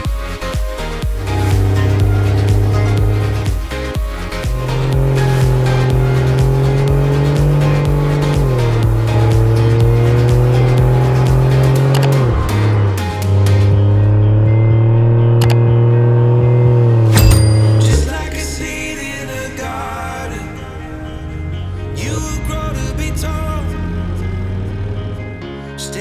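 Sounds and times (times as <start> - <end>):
background music with steady beat: 0.0 - 15.7, 17.1 - 26.0
car engine pulling through gears: 0.0 - 25.6.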